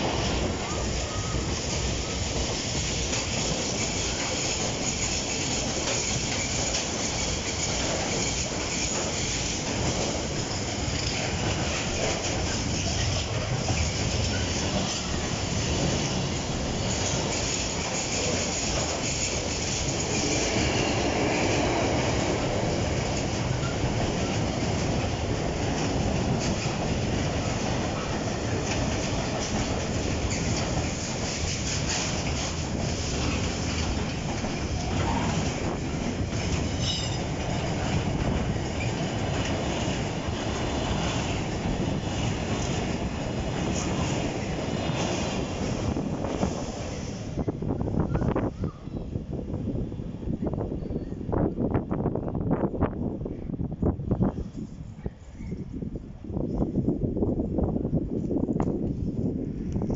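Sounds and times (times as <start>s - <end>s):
freight train wagons rolling: 0.0s - 48.8s.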